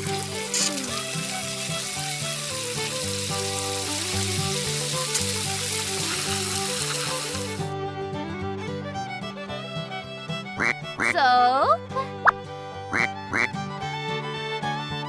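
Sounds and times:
water spray hissing: 0:00.0 - 0:07.7
background music: 0:00.0 - 0:15.0.

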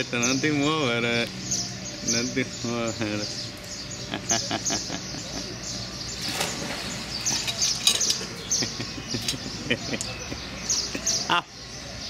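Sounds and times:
outdoor background noise: 0:00.0 - 0:12.0
small birds chirping: 0:00.0 - 0:12.0.

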